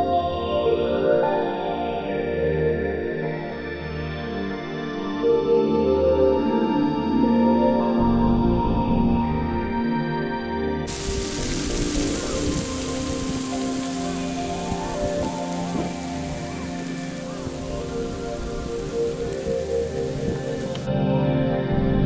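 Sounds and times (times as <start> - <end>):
soft ambient music: 0.0 - 22.0
rushing hiss of weather noise: 10.9 - 20.9.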